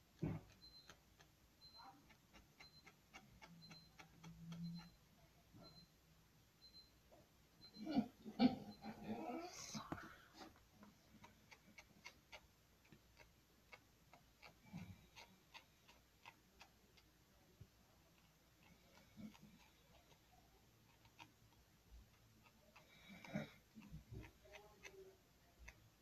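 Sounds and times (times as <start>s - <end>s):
marker tip scratching on foam: 18.1s - 26.0s.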